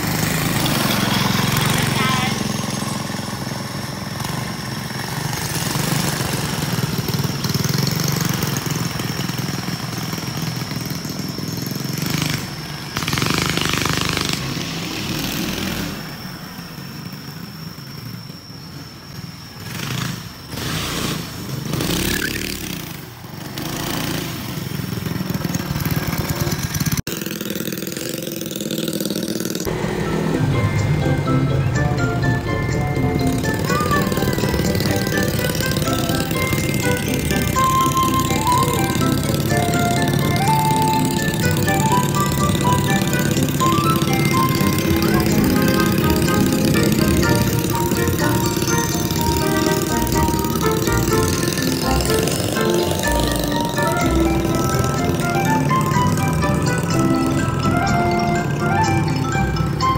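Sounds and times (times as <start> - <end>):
go-kart engine running: 0.0 - 59.9.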